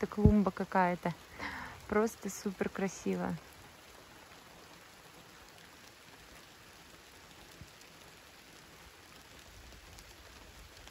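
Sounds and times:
light rain: 0.0s - 10.9s
ticks of raindrops: 0.0s - 10.9s.

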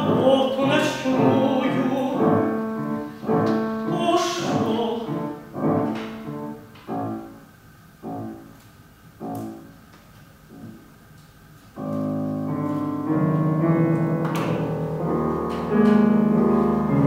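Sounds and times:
solo piano chords: 0.0s - 8.6s, 9.2s - 9.8s, 11.8s - 17.0s.

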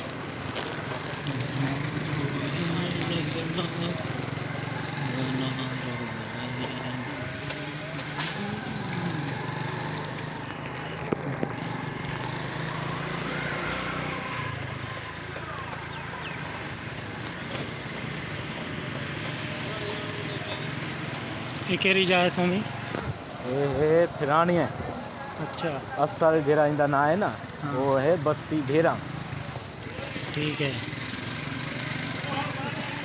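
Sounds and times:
faint street voices: 0.0s - 33.0s
motorcycle engine running: 0.1s - 21.2s.

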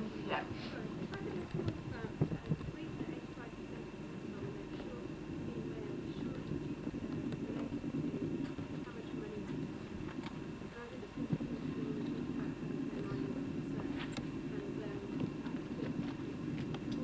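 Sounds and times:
murmur of many voices: 0.0s - 17.0s.

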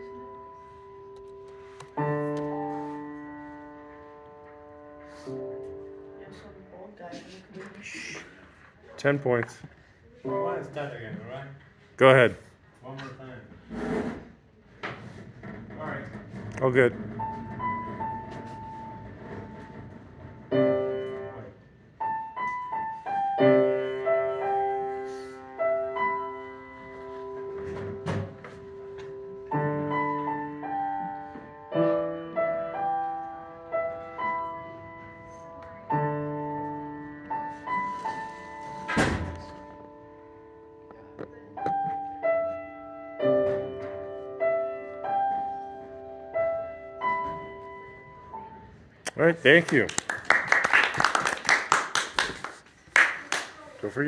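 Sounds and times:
grand piano played softly: 0.0s - 7.0s, 10.2s - 11.2s, 15.6s - 49.0s
piano chord ringing: 10.3s - 11.0s, 20.5s - 37.7s.

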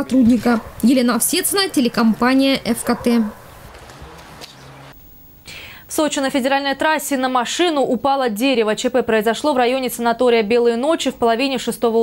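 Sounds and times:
woman speaking: 0.0s - 3.4s, 5.9s - 12.0s
faint outdoor background noise: 0.0s - 12.0s
short breath: 5.5s - 5.9s.

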